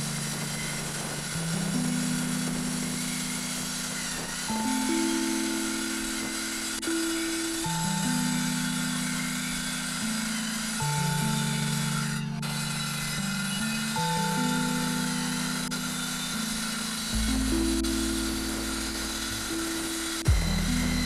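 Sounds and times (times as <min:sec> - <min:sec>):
background music with low chords: 0:00.0 - 0:21.0
circular saw cutting plywood: 0:00.0 - 0:21.0.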